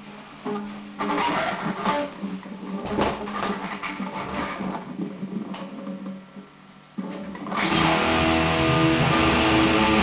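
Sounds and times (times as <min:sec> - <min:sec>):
distorted electric guitar riff: 0:00.0 - 0:10.0.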